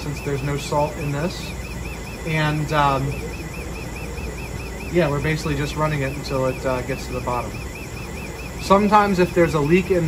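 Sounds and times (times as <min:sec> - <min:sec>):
lab equipment humming: 0:00.0 - 0:10.0.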